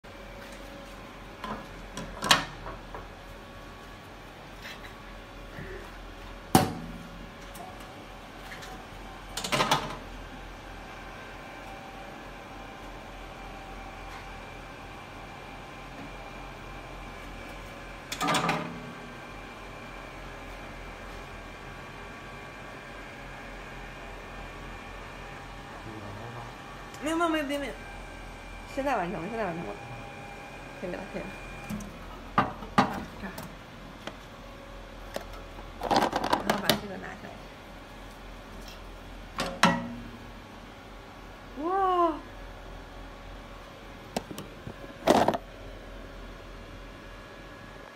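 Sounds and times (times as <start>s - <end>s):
machine humming: 21.5s - 32.6s.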